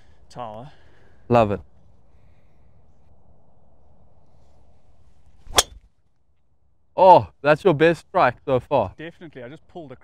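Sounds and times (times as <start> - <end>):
golf club striking ball: 5.5 - 5.8.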